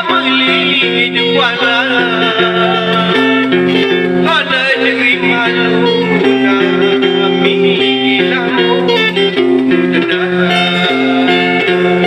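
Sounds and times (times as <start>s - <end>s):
bass line: 0.0s - 12.0s
man singing: 0.0s - 12.0s
mandolin melody: 0.0s - 12.0s.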